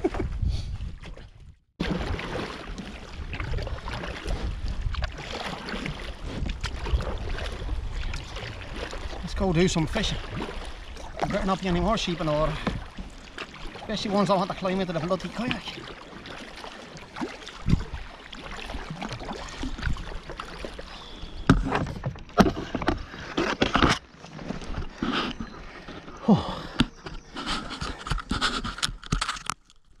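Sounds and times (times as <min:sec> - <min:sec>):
kayak paddle splashing in water: 0:01.8 - 0:29.4.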